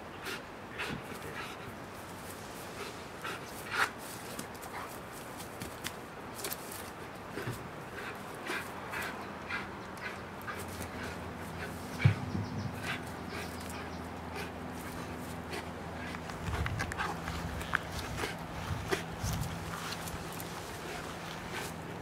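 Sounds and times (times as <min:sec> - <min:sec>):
dog breathing quickly: 0:00.2 - 0:05.3, 0:07.3 - 0:22.0.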